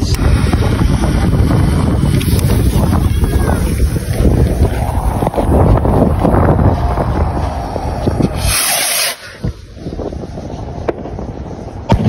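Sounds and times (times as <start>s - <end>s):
wind buffeting a microphone: 0.0s - 12.0s.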